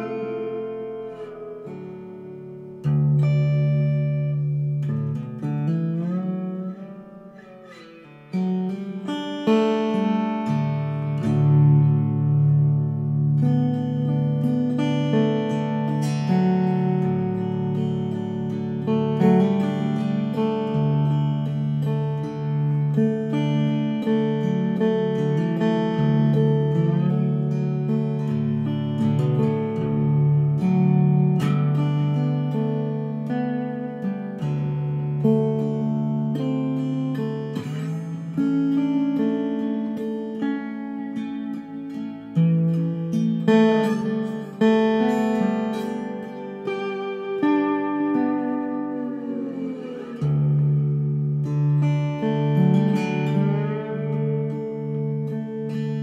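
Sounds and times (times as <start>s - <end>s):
lap slide guitar melody: 0.0s - 56.0s.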